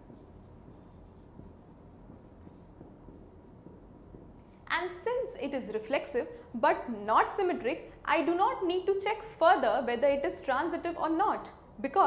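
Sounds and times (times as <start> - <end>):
marker writing on whiteboard: 0.0 - 5.2.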